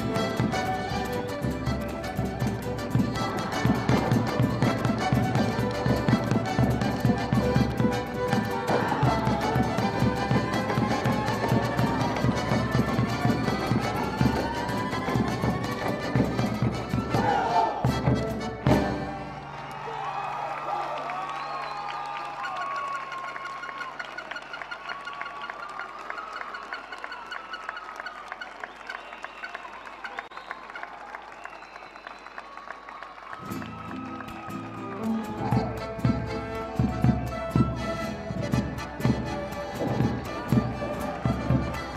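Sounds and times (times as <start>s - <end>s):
accordion: 0.0s - 19.4s, 35.4s - 41.9s
violin: 0.0s - 19.4s, 33.5s - 41.9s.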